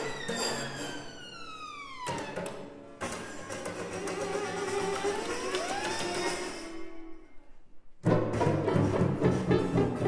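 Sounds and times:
string quartet: 0:08.0 - 0:10.0.

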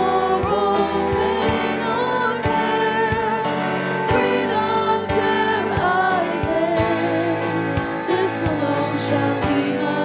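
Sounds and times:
group singing worship song: 0:00.0 - 0:10.0
instrumental accompaniment with beat: 0:00.0 - 0:10.0.

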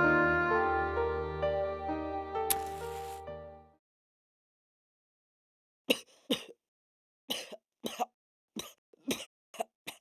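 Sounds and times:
man coughing harshly: 0:05.9 - 0:06.6.

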